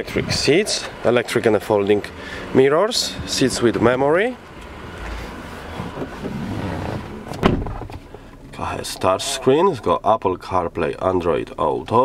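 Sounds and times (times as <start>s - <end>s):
rustling and shuffling movement: 3.1s - 8.6s.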